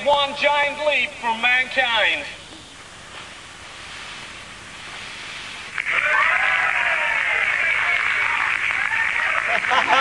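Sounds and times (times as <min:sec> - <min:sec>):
faint static hiss: 0:00.0 - 0:10.0
studio audience laughter: 0:09.4 - 0:10.0.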